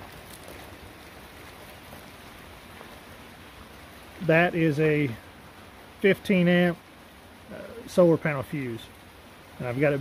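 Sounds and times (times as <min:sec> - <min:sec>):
soft outdoor hiss: 0:00.0 - 0:10.0.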